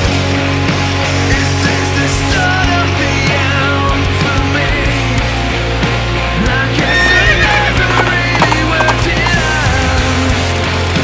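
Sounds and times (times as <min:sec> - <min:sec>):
rock music: 0:00.0 - 0:11.0
horse whinny: 0:06.7 - 0:09.0.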